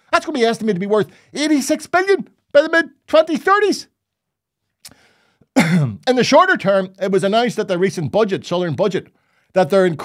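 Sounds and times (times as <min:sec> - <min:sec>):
mouth click: 0:04.8 - 0:05.0
faint breath: 0:04.9 - 0:05.5, 0:09.1 - 0:09.6
man clearing throat: 0:05.6 - 0:06.0.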